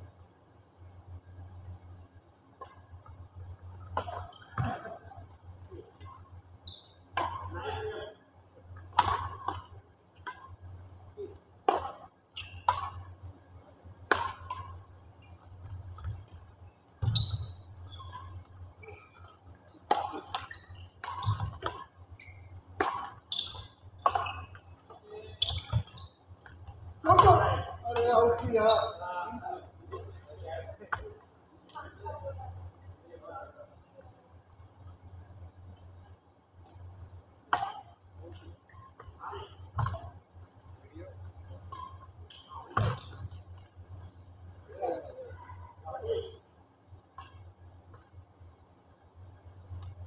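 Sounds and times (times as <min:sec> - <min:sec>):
rackets smacking a shuttlecock: 0:08.8 - 0:10.6, 0:11.6 - 0:13.1, 0:14.0 - 0:14.8, 0:18.0 - 0:28.1, 0:37.5 - 0:38.4.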